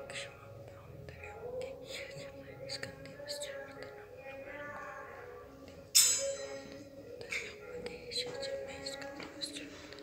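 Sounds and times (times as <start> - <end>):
person whispering: 7.1 - 10.0.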